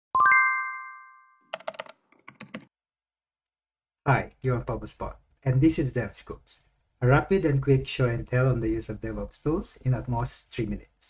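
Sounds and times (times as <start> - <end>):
bright ringing chime: 0.2 - 1.4
keyboard typing clicks: 1.5 - 2.7.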